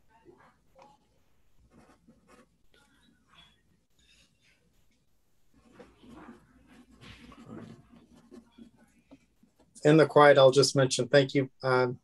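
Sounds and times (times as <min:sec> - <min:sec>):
pen scratching while writing: 0:01.6 - 0:03.6, 0:05.5 - 0:09.7.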